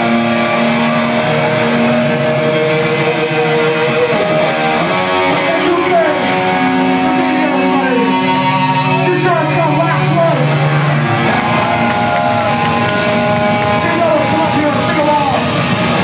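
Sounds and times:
distorted electric guitar sustained notes: 0:00.0 - 0:16.0.

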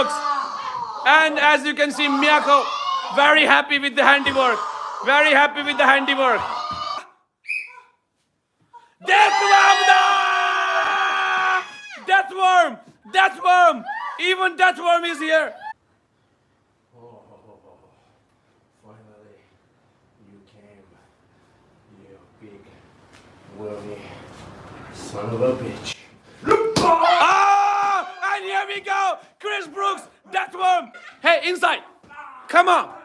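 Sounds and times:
person shouting: 0:00.0 - 0:07.1, 0:26.4 - 0:30.9
person yelling: 0:00.0 - 0:07.1, 0:09.0 - 0:15.7, 0:26.4 - 0:33.0.

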